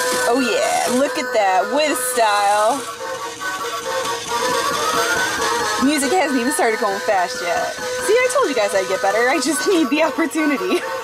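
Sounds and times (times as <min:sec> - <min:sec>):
electronic toy machine tune: 0:00.0 - 0:11.0.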